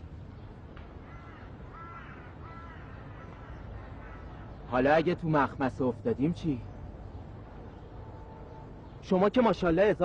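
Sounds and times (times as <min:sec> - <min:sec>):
low outdoor rumble: 0:00.0 - 0:10.0
crow cawing: 0:01.0 - 0:04.6.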